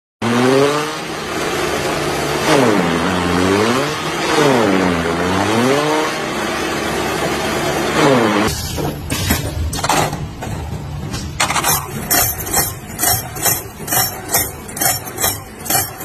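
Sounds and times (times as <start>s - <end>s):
chopping and blowing noise: 7.8s - 8.6s
forage chopper motor under load: 11.7s - 16.0s.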